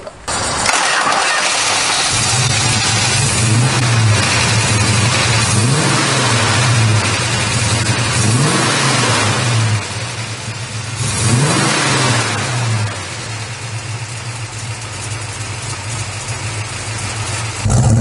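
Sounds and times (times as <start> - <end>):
car engine revving and idling: 0.3 - 18.0.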